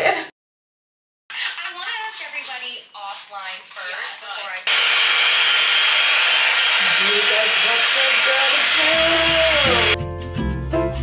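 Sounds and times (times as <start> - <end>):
hair dryer brush blowing: 4.6 - 10.0.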